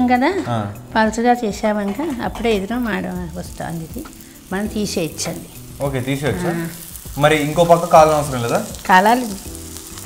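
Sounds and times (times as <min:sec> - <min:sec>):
light frying sizzle: 0:00.0 - 0:10.0
person talking: 0:05.9 - 0:06.8.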